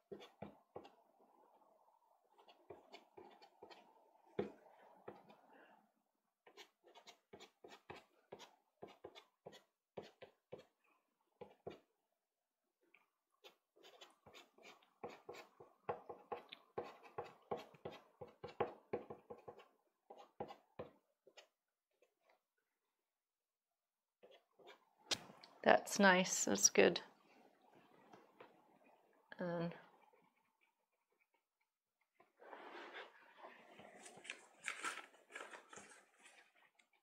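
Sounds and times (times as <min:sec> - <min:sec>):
pastel stick scratching on paper: 0:06.5 - 0:10.7, 0:13.4 - 0:15.6.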